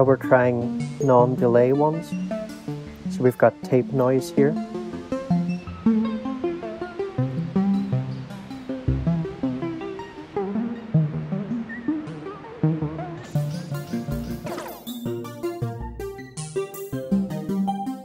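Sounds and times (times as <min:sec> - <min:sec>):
echoing synthesizer melody: 0:00.0 - 0:18.0
crackly hiss: 0:00.6 - 0:15.6.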